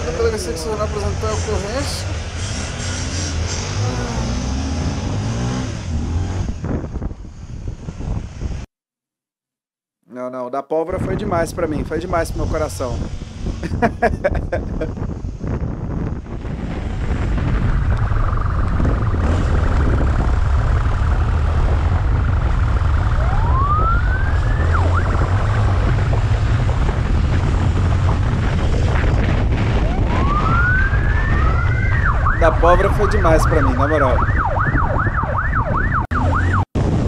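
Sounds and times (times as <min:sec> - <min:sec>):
motorcycle engine rumble: 0:00.0 - 0:08.6, 0:11.6 - 0:37.0
wind: 0:00.0 - 0:08.7, 0:10.1 - 0:37.0
police motorcycle siren: 0:17.2 - 0:27.2, 0:29.0 - 0:37.0.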